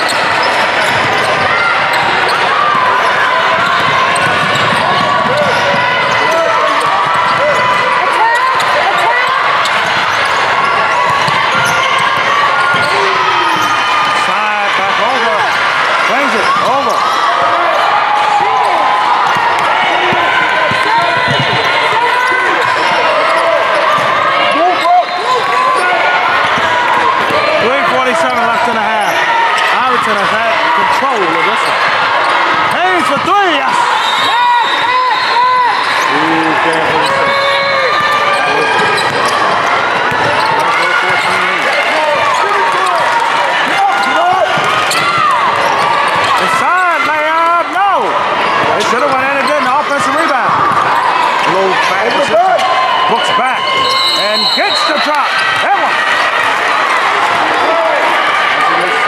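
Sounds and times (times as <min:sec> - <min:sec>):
players and spectators shouting: 0:00.0 - 0:59.0.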